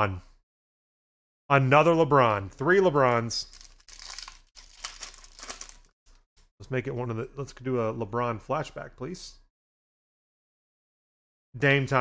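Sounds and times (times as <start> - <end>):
card pack wrapper tearing: 3.0 - 5.9.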